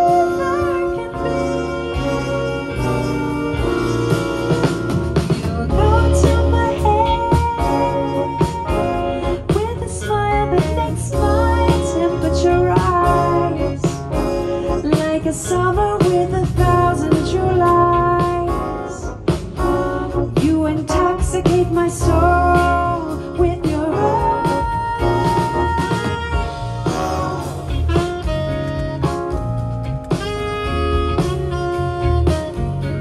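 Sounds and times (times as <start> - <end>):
symphony orchestra playing jazz: 0.0 - 33.0.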